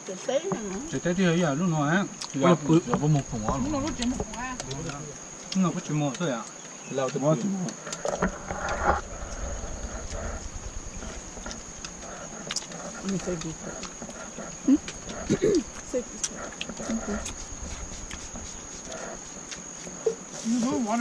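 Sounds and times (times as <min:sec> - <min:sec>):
high-pitched insect drone: 0:00.1 - 0:06.4, 0:07.2 - 0:21.0
people's voices: 0:02.3 - 0:06.2.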